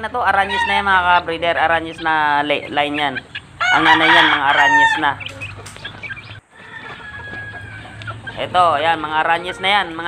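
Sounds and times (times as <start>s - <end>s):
chickens clucking softly: 0.0s - 10.0s
faint chicken calls: 0.2s - 10.0s.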